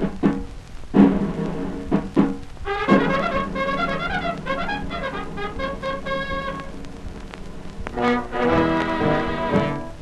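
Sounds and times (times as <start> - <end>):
held brass notes: 2.6 - 6.8, 7.9 - 10.0
record surface clicks: 3.3 - 8.0.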